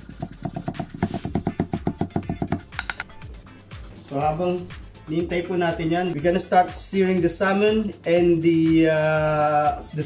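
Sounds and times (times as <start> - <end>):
knife chopping on wooden board: 0.1 - 3.1.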